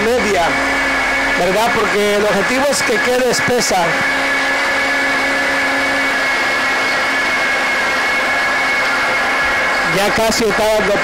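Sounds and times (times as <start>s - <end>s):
blender motor whine: 0.0s - 11.0s.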